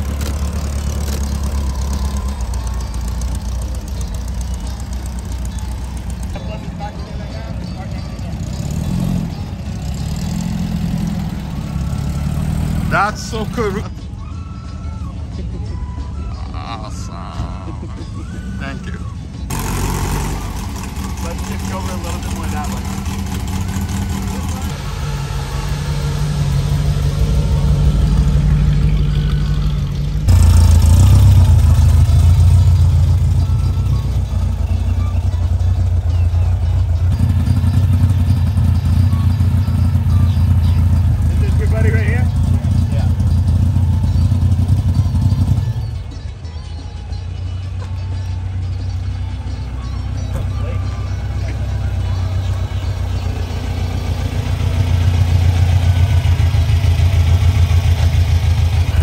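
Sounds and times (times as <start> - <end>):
car engines rumbling past: 0.0 - 14.3, 16.9 - 46.3, 47.5 - 59.0.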